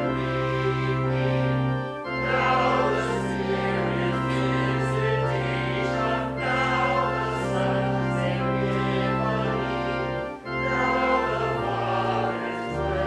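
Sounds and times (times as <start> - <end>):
choir singing slow sacred piece: 0.0 - 13.0
sustained accompaniment: 0.0 - 13.0.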